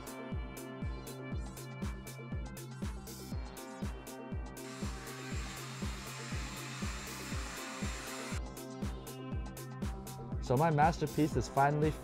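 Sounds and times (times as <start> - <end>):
hair dryer blowing: 4.6 - 8.4.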